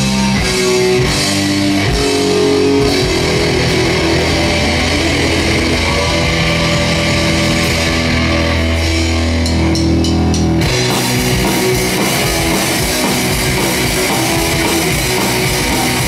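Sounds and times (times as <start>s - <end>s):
bass guitar: 0.0s - 16.0s
drum kit: 0.0s - 16.0s
electric guitars: 0.0s - 16.0s.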